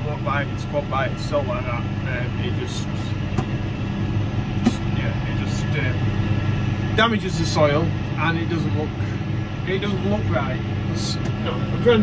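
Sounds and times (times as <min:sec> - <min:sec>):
tractor engine droning: 0:00.0 - 0:12.0.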